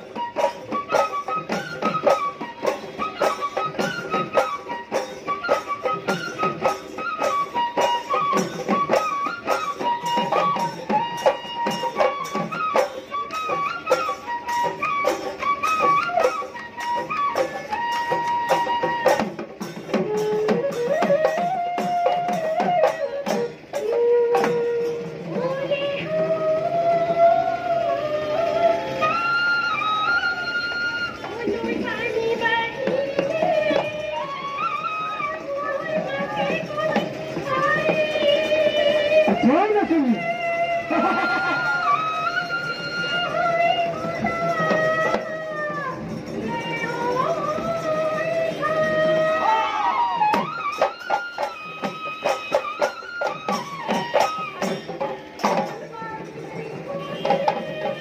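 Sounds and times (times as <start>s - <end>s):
sliding folk melody: 0.0s - 58.0s
drums beating fast rhythm: 31.1s - 58.0s.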